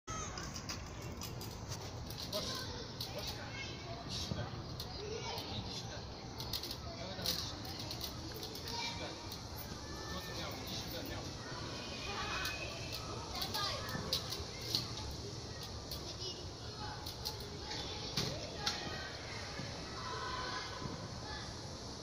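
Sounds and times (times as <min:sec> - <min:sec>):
indistinct voices of adults and children: 0:00.1 - 0:22.0.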